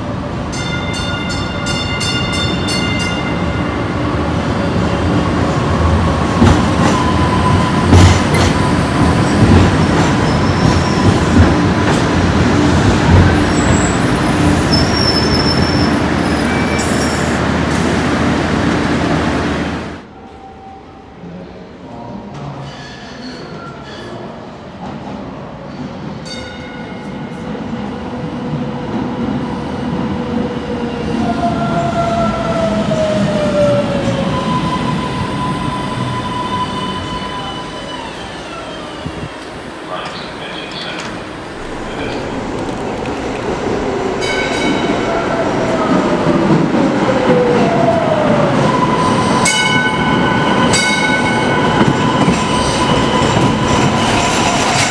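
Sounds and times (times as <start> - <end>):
light-rail train passing: 0.0 - 54.9
train approaching through tunnel: 0.0 - 54.9
train wheels squealing: 10.1 - 11.2, 13.5 - 17.4, 22.6 - 24.3, 48.7 - 54.8.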